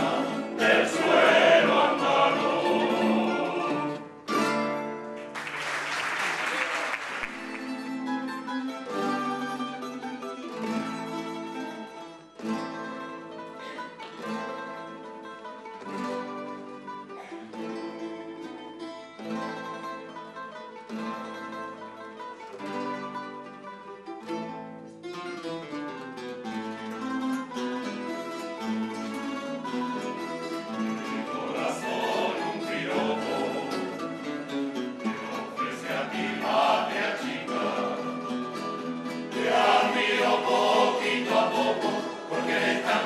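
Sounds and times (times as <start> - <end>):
plucked string ensemble playing: 0.0 - 5.8, 7.2 - 43.0.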